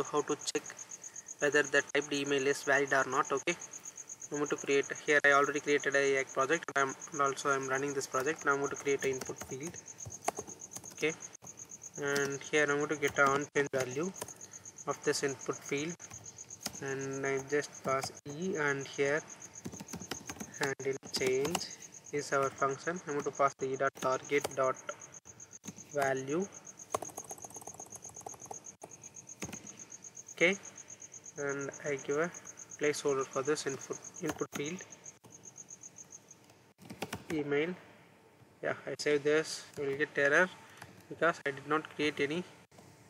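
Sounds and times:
computer keyboard clicks: 0:19.6 - 0:21.7, 0:26.9 - 0:28.6.

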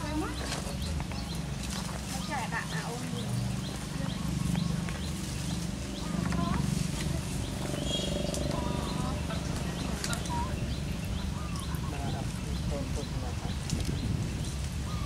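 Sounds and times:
high chirping calls: 0:00.0 - 0:15.0
murmur of voices: 0:00.0 - 0:15.0.

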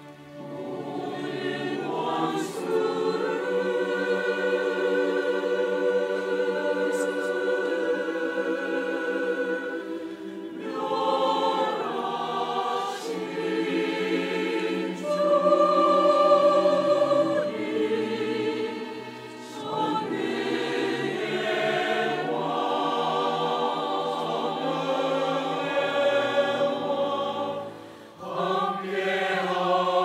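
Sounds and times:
mixed choir singing: 0:00.0 - 0:30.0.

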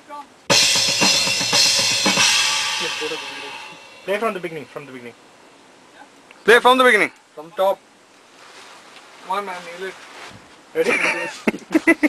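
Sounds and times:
drum strikes: 0:00.5 - 0:04.7
crash cymbals ringing: 0:00.5 - 0:05.1.

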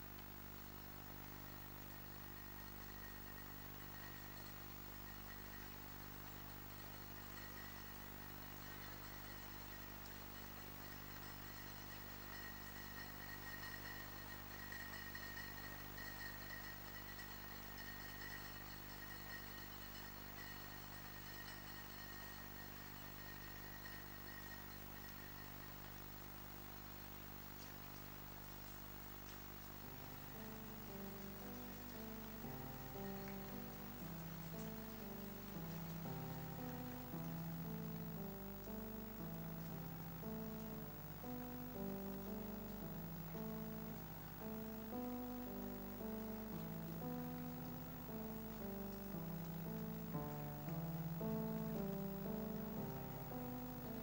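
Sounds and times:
faint high-pitched whine: 0:00.0 - 0:54.0
faint hiss: 0:00.0 - 0:54.0
steady low hum: 0:00.0 - 0:54.0.

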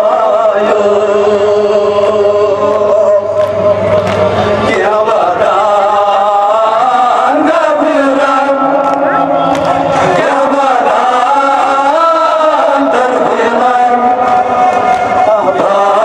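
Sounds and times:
men chanting a lament: 0:00.0 - 0:16.0.

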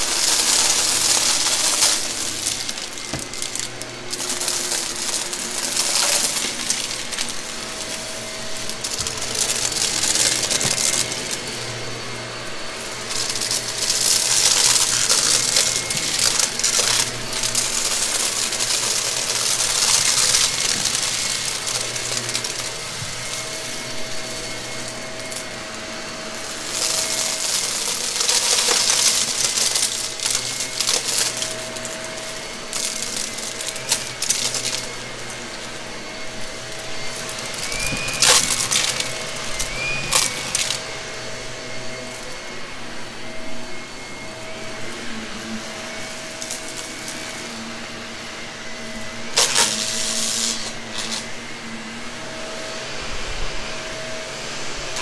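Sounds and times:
vacuum cleaner pickup noise: 0:00.0 - 0:55.0
vacuum motor whine: 0:00.0 - 0:55.0.

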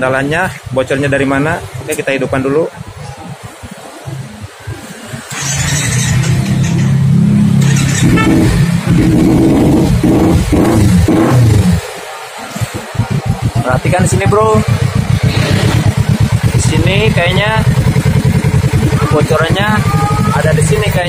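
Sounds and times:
motorcycle engine revving: 0:02.8 - 0:21.0
motorcycle electric starter: 0:05.3 - 0:08.8.

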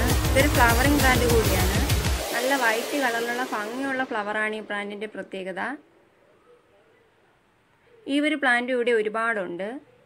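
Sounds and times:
background music beat: 0:00.0 - 0:04.7
steady hiss: 0:00.5 - 0:04.4.

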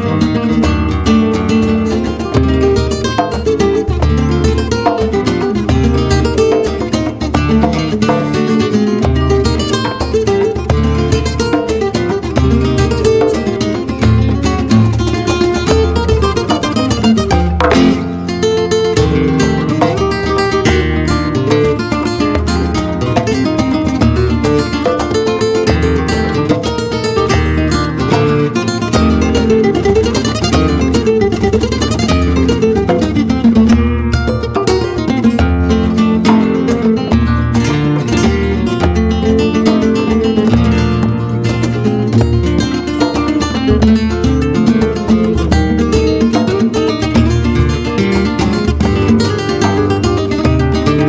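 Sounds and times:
flamenco guitars playing: 0:00.0 - 0:51.0
hand drum rhythm: 0:00.0 - 0:51.0
sharp guitar strum: 0:00.0 - 0:51.0.

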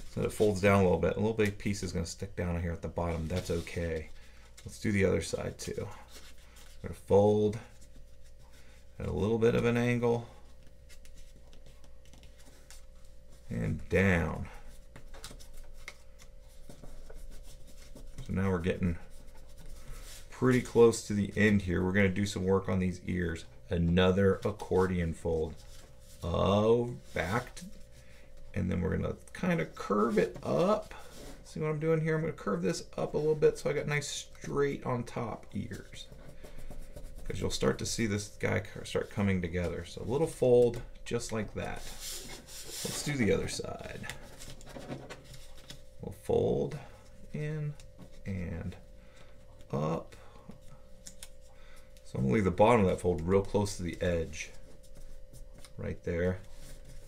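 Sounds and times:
paper rustling and crinkling: 0:38.8 - 0:46.0.

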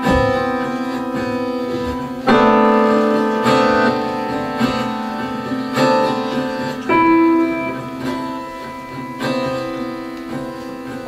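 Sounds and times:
slow keyboard chords: 0:00.0 - 0:11.0.

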